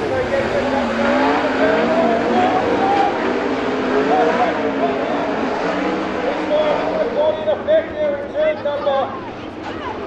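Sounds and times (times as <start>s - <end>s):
race car engines running hard: 0.0s - 10.0s.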